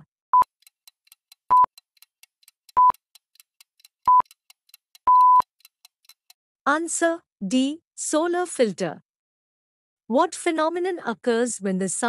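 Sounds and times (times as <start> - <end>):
faint quick ticking: 0.4 - 6.4
short countdown beeps: 1.4 - 1.8, 2.7 - 3.0, 4.1 - 4.4, 5.0 - 5.5.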